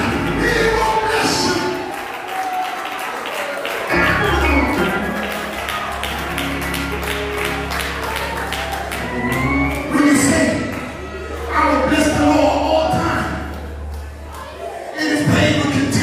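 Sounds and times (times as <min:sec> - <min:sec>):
low bass notes and chords: 0:00.0 - 0:01.8, 0:03.9 - 0:16.0
gospel music: 0:00.0 - 0:16.0
hand-clapping: 0:04.6 - 0:09.9.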